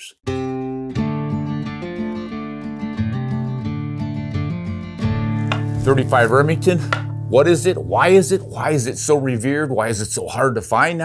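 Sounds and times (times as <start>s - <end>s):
strummed acoustic guitar: 0.3s - 9.4s.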